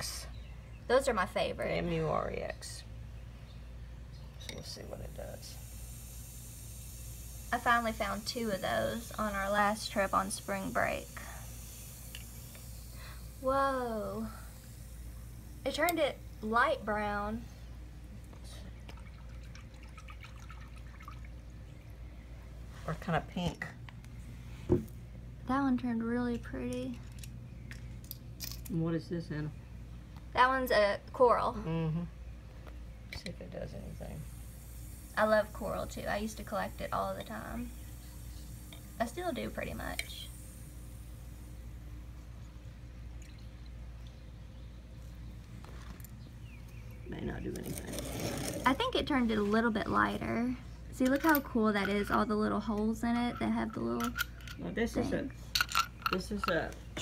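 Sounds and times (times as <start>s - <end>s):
liquid dripping into water: 18.6s - 22.0s, 43.1s - 44.2s.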